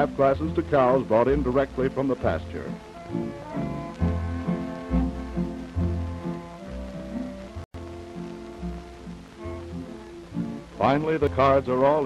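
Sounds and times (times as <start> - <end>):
bowed strings: 0.0 - 11.7.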